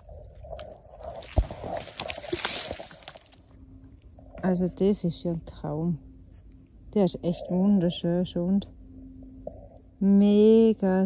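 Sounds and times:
dry leaves rustling and crackling: 1.0s - 3.4s.

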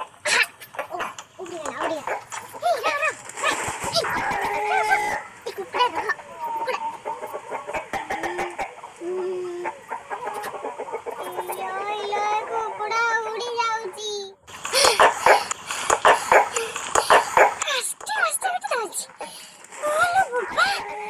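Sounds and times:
chickens clucking: 0.0s - 21.0s
person's voice: 17.6s - 21.0s.

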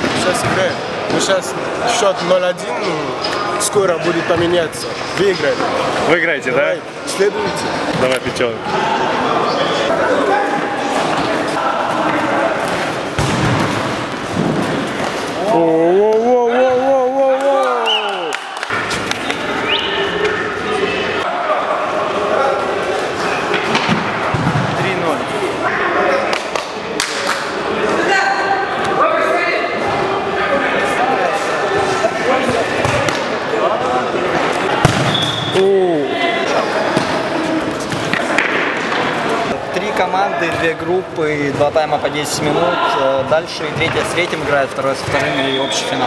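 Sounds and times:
players shouting: 0.0s - 40.8s.

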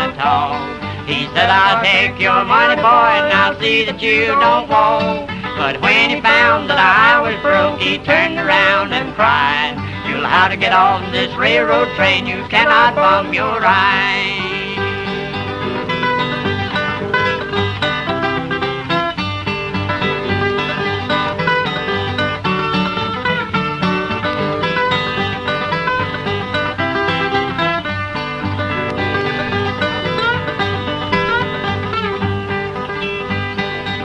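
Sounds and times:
steel guitar melody: 0.0s - 34.0s
strummed acoustic guitar: 0.0s - 34.0s.

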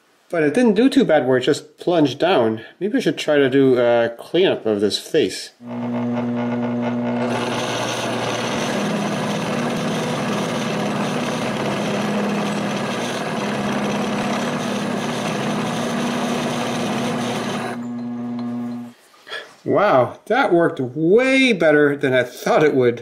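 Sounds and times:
milling machine motor hum: 5.6s - 18.9s
metal cutting scrape: 5.7s - 19.0s.

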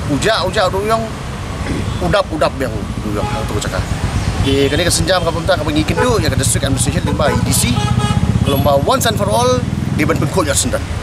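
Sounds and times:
motorcycle engine rumbling: 1.6s - 10.5s
man speaking: 2.0s - 10.8s.

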